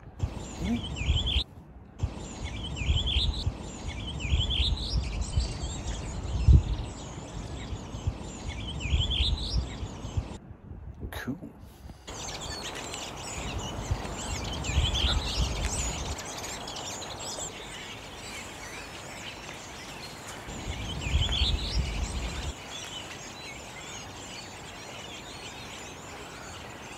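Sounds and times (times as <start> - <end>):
birds warbling and twittering: 0.0 - 10.4, 11.8 - 26.9.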